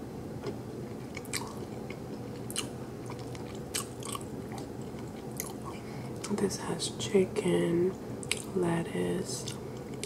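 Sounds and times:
closed-mouth chewing: 0:01.0 - 0:06.4, 0:08.2 - 0:08.5
wet mouth clicks: 0:01.1 - 0:05.7, 0:08.2 - 0:08.5.

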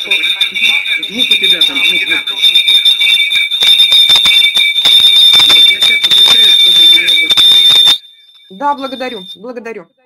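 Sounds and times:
high-pitched feedback whistle: 0:00.0 - 0:09.5.

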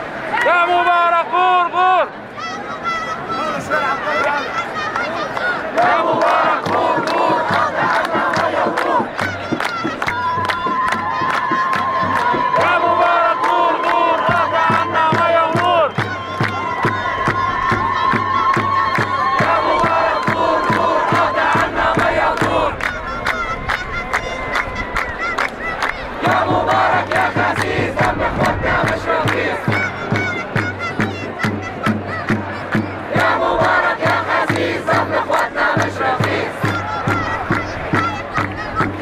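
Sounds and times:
child's voice leading chant: 0:02.3 - 0:39.0
crowd chanting in rhythm: 0:03.5 - 0:23.0, 0:25.0 - 0:30.6, 0:31.8 - 0:39.0
hand clapping: 0:05.4 - 0:38.9.

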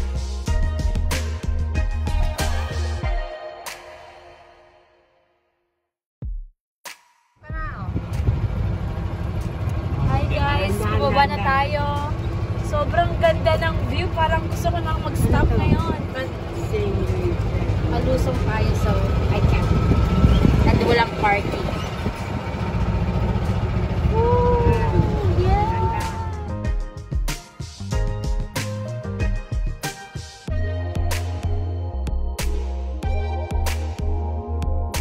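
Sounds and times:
golf cart motor and tyres rumbling: 0:07.8 - 0:26.7.

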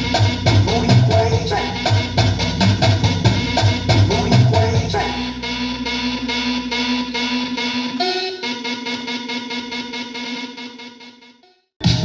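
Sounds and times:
deep bass: 0:00.0 - 0:08.0
dance workout music: 0:00.0 - 0:11.2.

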